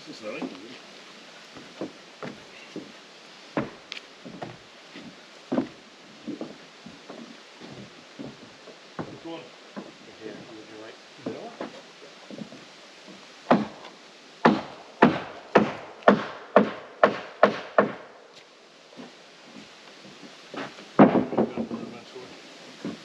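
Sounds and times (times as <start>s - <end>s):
hammer striking wood: 3.6s - 3.8s, 13.5s - 18.0s, 20.6s - 21.8s.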